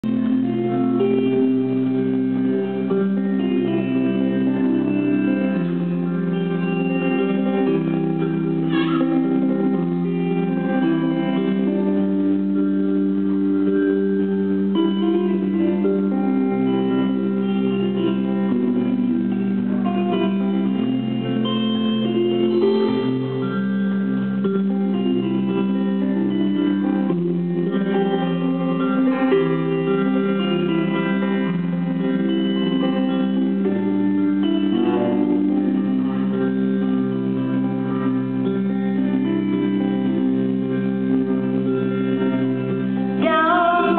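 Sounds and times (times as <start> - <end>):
bass guitar: 0.0 - 43.9
electric guitar: 0.0 - 43.9.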